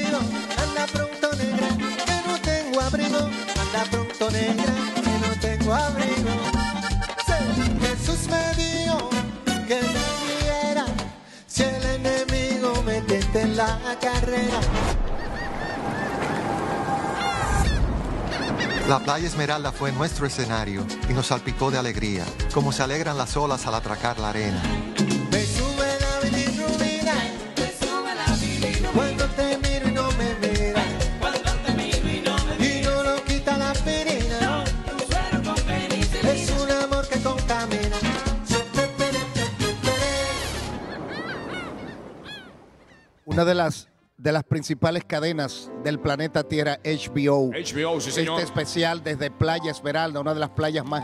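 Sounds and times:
gulls crying: 14.4s - 19.6s, 40.1s - 43.3s.

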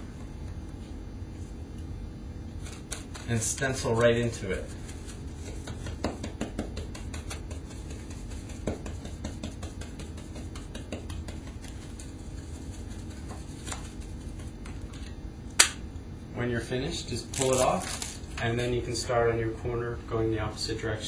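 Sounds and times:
steady low hum: 0.0s - 21.0s
stencil tool tapping and rubbing: 2.6s - 14.9s.

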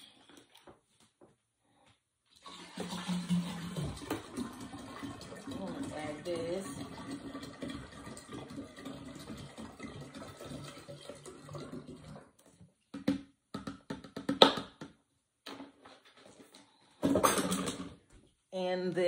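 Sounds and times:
juice pouring into dispenser: 2.4s - 12.6s.

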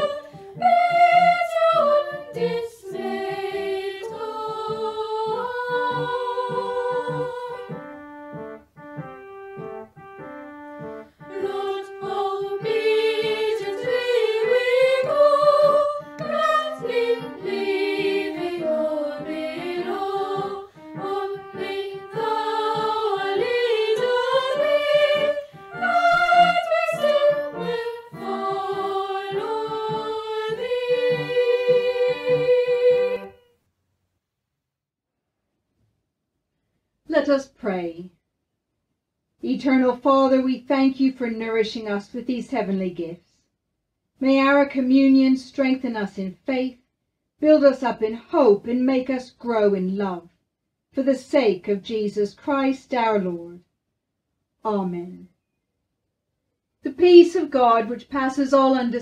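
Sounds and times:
children's choir singing: 0.0s - 8.0s, 10.8s - 33.4s
organ accompaniment: 0.0s - 33.4s.

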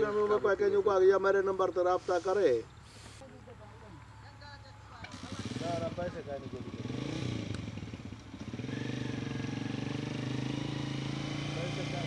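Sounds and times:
engine running nearby: 4.9s - 12.0s.

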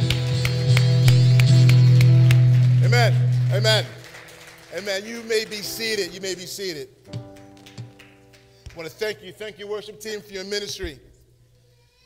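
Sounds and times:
hand claps: 0.0s - 6.2s, 7.0s - 9.0s
worship band sustained chord: 0.0s - 7.1s.

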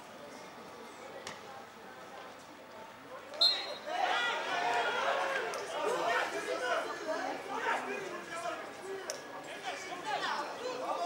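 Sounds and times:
people talking and calling out: 0.4s - 11.0s.

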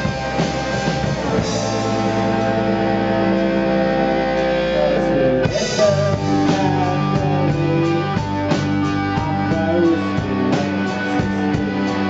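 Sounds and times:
live band instrumental with keyboard: 0.0s - 12.0s.

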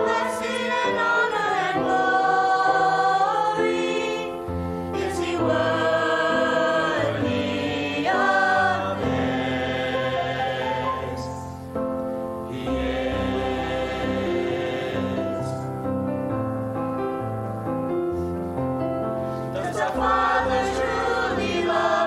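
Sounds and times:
choir singing in harmony: 0.0s - 16.8s, 19.2s - 22.0s.

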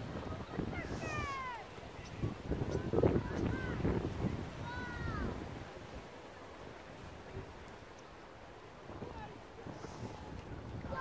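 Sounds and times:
wind rumble on microphone: 0.0s - 7.8s, 8.5s - 11.0s.

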